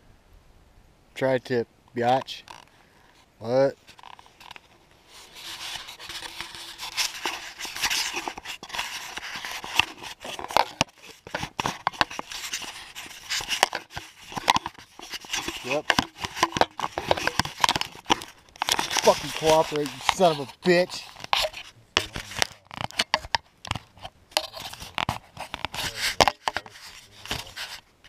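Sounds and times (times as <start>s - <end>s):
camera rustling against clothing: 2.0s - 28.0s
sharp clicks and knocks: 9.2s - 26.7s.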